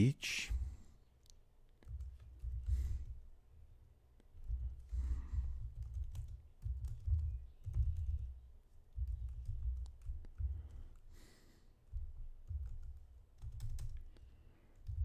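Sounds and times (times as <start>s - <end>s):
computer keyboard typing: 1.8s - 3.2s, 4.4s - 11.1s, 11.9s - 15.0s.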